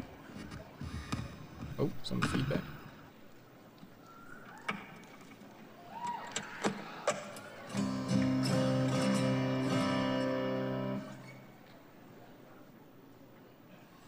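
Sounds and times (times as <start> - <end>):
acoustic guitar chord: 7.7 - 11.5
faint feedback whine: 7.8 - 11.9.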